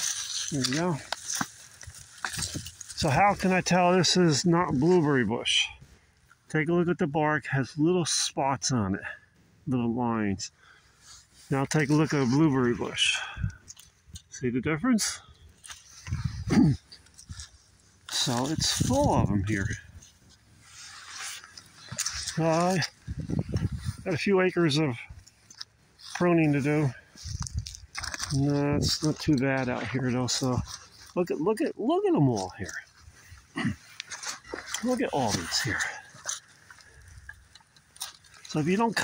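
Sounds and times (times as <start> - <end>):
rustling of dry leaves: 0.0 - 6.4, 15.0 - 39.0.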